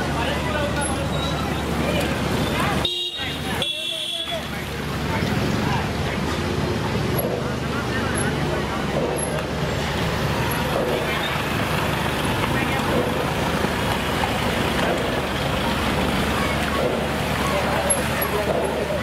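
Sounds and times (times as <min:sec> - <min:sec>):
low traffic rumble: 0:00.0 - 0:19.0
people's voices: 0:00.0 - 0:19.0
scooter and car engines: 0:00.0 - 0:19.0.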